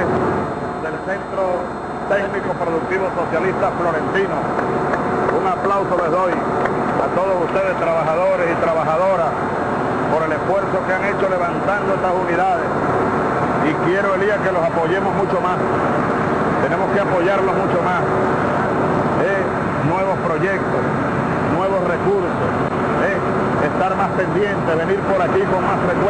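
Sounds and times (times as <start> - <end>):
vehicle engine humming: 0.0 - 26.0
people talking: 0.8 - 4.6, 5.3 - 9.4, 10.1 - 12.8, 13.6 - 15.7, 16.6 - 18.2, 19.2 - 20.8, 21.5 - 26.0.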